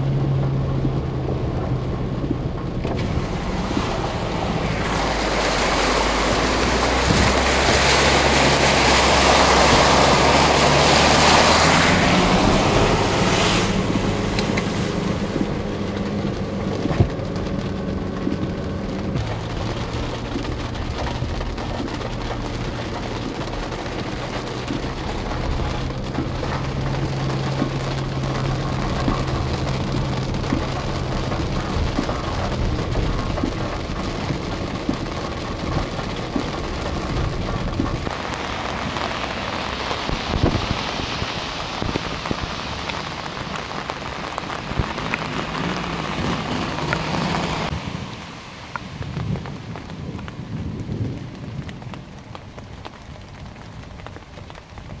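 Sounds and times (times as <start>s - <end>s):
low rumble: 0.0s - 55.0s
hiss of water: 38.1s - 43.2s.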